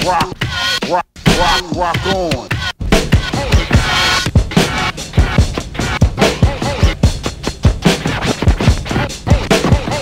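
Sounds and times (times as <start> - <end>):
turntable scratching: 0.0 - 10.0
booming kick drums: 2.8 - 10.0.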